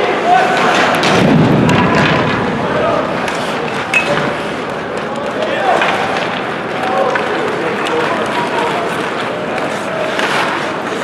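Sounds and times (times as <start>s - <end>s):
skates scraping on ice: 2.9s - 11.0s.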